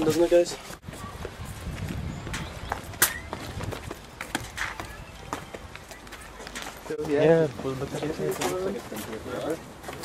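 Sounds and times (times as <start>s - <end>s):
footsteps on bus steps: 0.0s - 10.0s.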